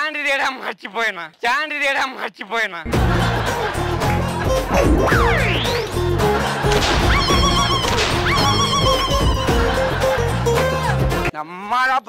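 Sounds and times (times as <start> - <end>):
background music: 2.9 - 11.4
comic whistle and warble: 4.7 - 5.9, 7.1 - 9.5.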